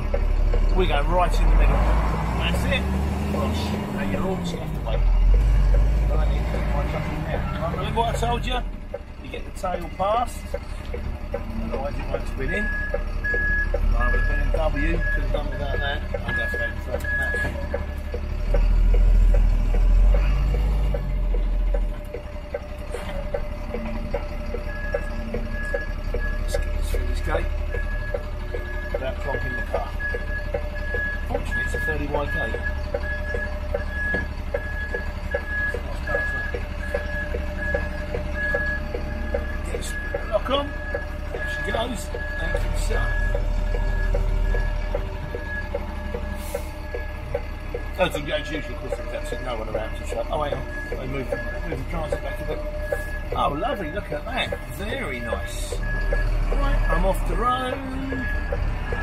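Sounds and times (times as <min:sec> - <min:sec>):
diesel engine rumbling: 0:00.0 - 0:59.0
reversing alarm beeps: 0:09.8 - 0:21.0, 0:23.3 - 0:59.0.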